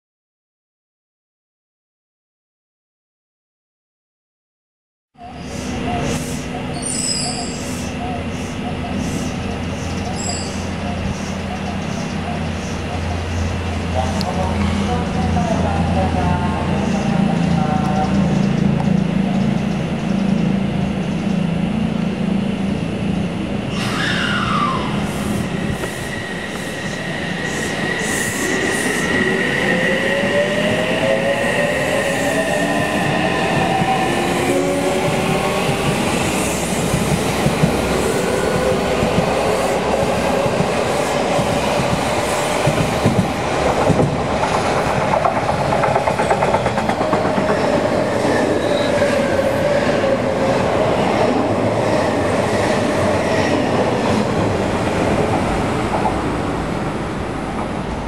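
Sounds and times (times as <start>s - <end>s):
train wheels rumbling on rail: 5.4s - 58.0s.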